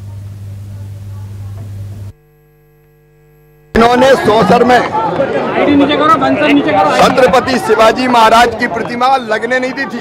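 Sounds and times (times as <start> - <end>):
electrical mains hum: 0.0 - 8.4.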